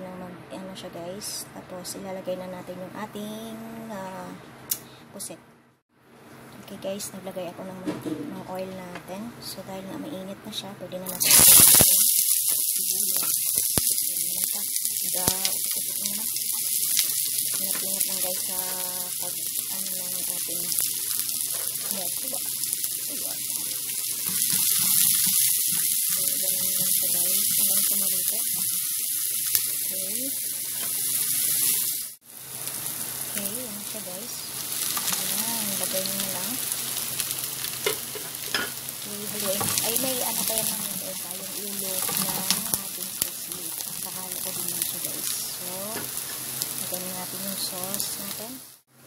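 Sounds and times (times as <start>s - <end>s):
onion sizzling in frying pan: 11.1s - 48.9s.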